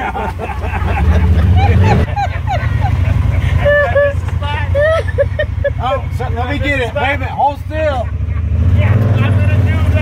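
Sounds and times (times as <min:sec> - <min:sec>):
people laughing: 0:00.0 - 0:08.9
engine idling: 0:00.0 - 0:10.0
people talking: 0:03.6 - 0:10.0.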